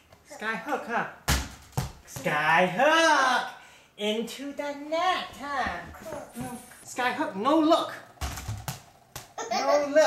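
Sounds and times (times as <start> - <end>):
man speaking: 2.1 - 5.2, 6.8 - 8.1.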